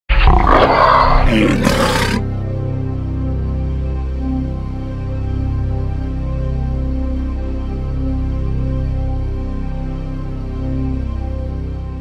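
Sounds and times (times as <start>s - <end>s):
loud animal-like roar: 0.1s - 2.3s.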